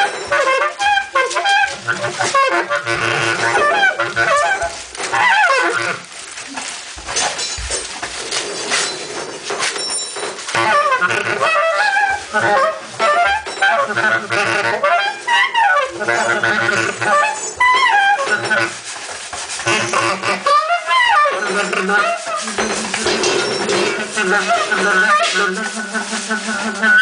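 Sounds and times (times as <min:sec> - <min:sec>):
improvised saxophone playing: 0:00.0 - 0:06.0, 0:10.5 - 0:18.8, 0:19.6 - 0:22.6, 0:23.7 - 0:27.0.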